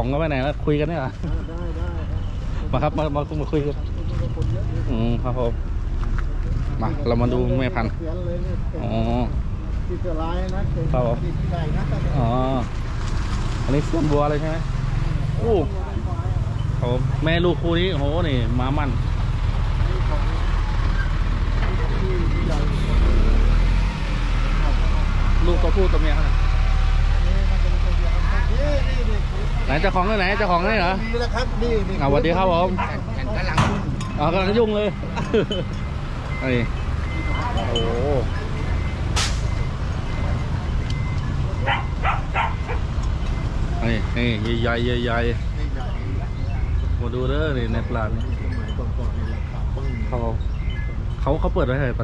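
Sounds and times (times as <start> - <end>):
vehicle engine idling: 13.7 - 52.0
short sharp sounds: 39.1 - 39.7.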